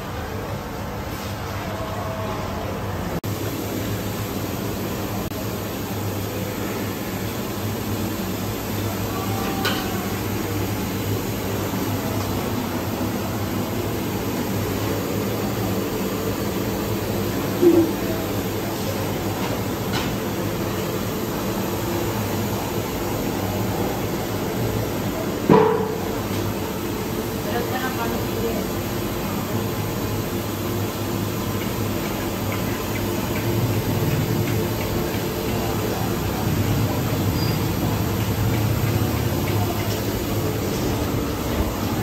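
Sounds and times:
kitchen equipment drone and hiss: 0.0s - 42.0s.

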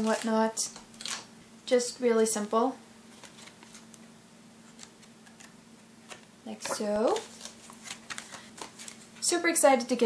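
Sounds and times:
low steady hum: 0.0s - 10.0s
paper pages rustling: 3.1s - 3.9s, 4.6s - 9.3s.

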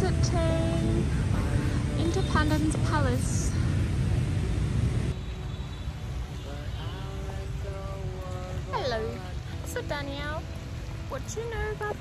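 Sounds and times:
low outdoor rumble: 0.0s - 5.2s, 6.1s - 12.0s.

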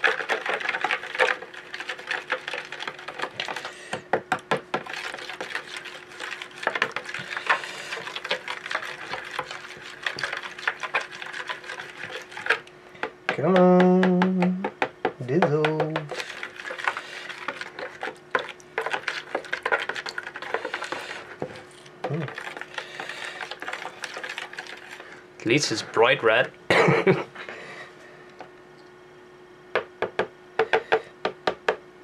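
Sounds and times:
person humming: 13.3s - 16.1s, 22.1s - 22.3s.

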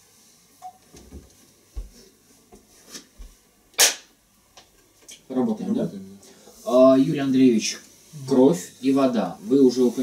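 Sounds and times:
sharp hand clap: 3.8s - 4.1s.

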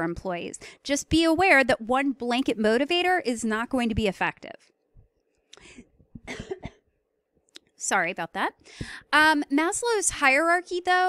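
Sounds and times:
woman coughing: 6.2s - 6.8s.

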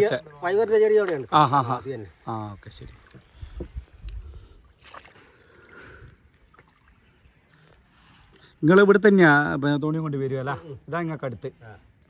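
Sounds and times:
water lapping against boat: 0.0s - 8.6s
paddle stroke splash: 2.8s - 8.5s.

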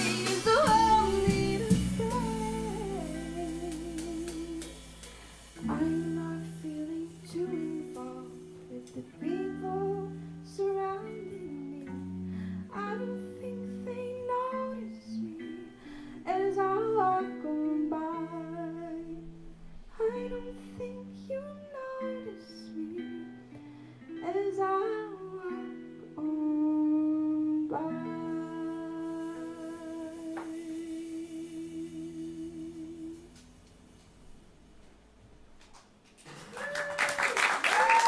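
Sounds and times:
light drums and cymbals: 0.0s - 7.9s
woman singing: 0.0s - 33.4s
clean electric guitars: 0.0s - 34.9s.

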